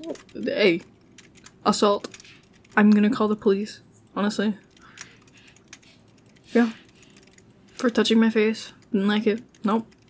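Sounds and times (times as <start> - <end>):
keyboard typing: 0.0 - 3.2, 4.6 - 10.0.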